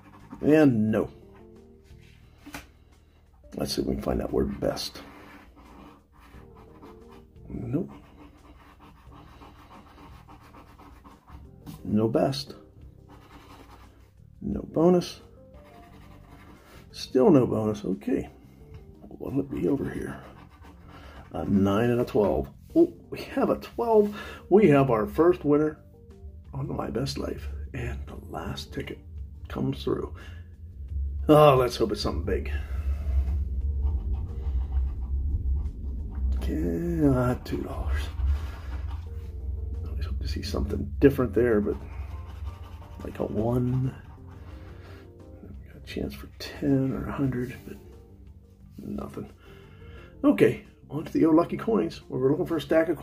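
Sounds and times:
coin scratching lottery ticket: 0:04.6 - 0:11.4, 0:13.1 - 0:14.0, 0:15.6 - 0:16.7, 0:41.2 - 0:44.2
steady low hum: 0:27.2 - 0:45.7.

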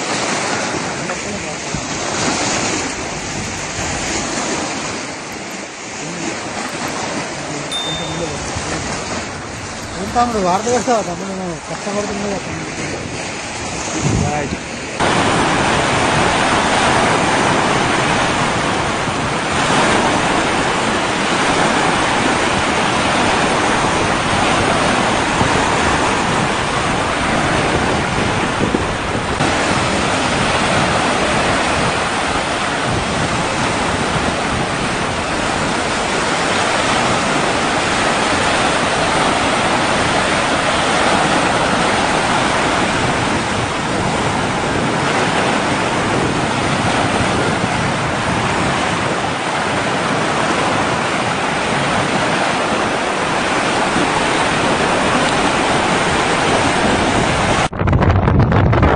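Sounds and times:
waves washing onto stone shore: 0:00.0 - 0:57.7
wind on microphone: 0:00.0 - 0:58.9.

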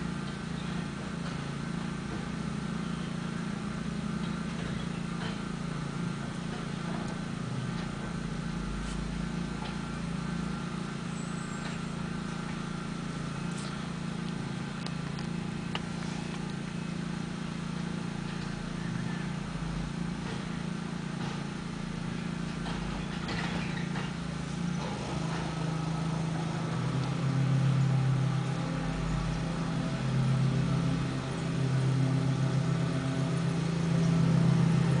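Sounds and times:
garbage truck diesel engine: 0:00.0 - 0:35.0.

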